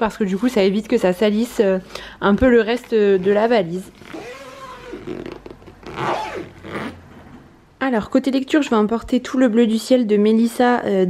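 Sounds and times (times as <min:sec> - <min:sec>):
suitcase zipper pulled: 0:03.9 - 0:07.0.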